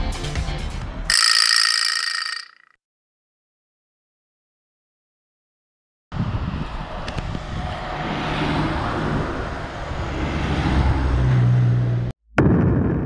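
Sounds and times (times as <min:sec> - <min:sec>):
cars passing: 0:06.2 - 0:12.1.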